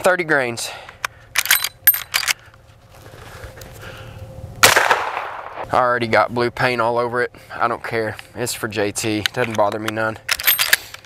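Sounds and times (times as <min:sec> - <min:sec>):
metallic clicks of rifle handling: 0:00.9 - 0:02.4, 0:09.2 - 0:11.0
suppressed rifle shot: 0:04.6 - 0:05.7.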